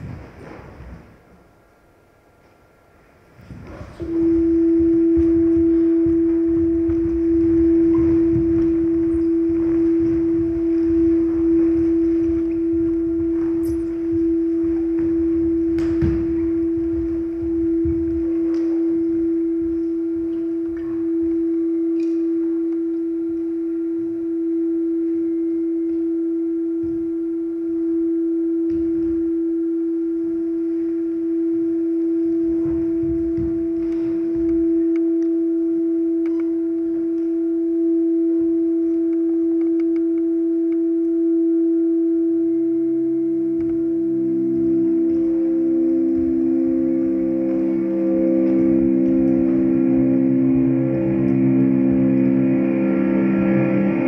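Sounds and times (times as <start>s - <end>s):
low tones: 0.0s - 54.0s
sustained pure tone drone: 0.0s - 54.0s
soft low thuds: 3.4s - 21.5s
higher tone: 3.6s - 54.0s
faint clicks: 38.8s - 40.8s.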